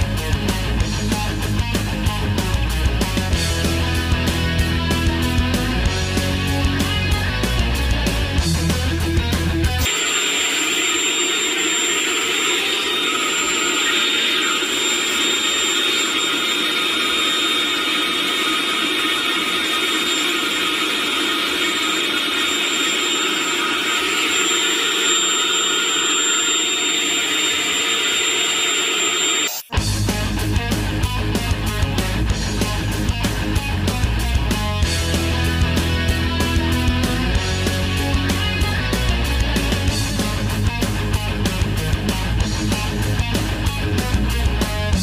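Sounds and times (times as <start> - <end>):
rock music: 0.0 - 24.8, 29.6 - 45.0
vacuum cleaner motor whine: 9.8 - 29.7.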